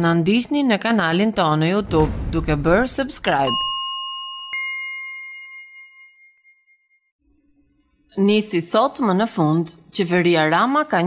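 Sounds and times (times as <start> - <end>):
bell-like notification ding: 3.5 - 7.1.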